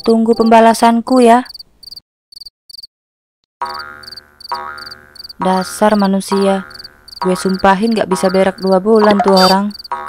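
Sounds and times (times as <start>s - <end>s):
crickets chirping: 1.4s - 2.9s, 3.7s - 10.0s
frog croaking: 3.6s - 10.0s.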